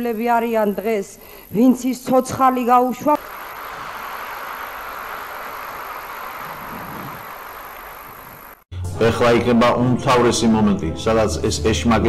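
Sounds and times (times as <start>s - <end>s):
audience applauding: 3.2s - 8.6s.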